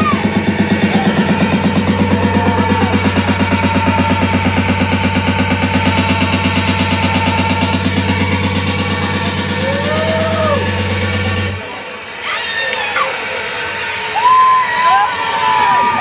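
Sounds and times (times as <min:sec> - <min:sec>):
loud electronic dance music: 0:00.0 - 0:12.3.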